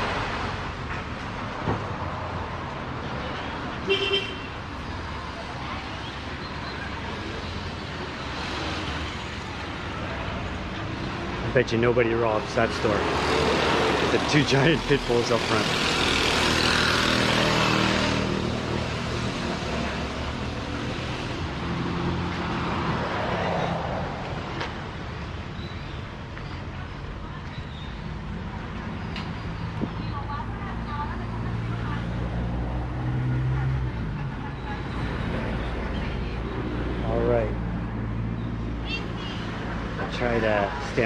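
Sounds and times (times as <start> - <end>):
cars driving on road: 0.0 - 41.0.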